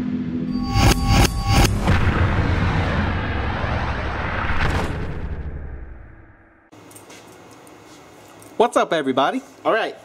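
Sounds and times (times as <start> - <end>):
impact hits: 0.5 - 6.7
deep rumbling boom tail: 0.6 - 6.6.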